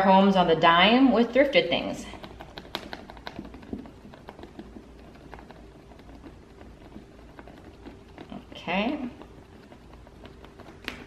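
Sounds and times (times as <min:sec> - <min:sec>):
rubber pouncer tapping paper: 0:02.1 - 0:11.0.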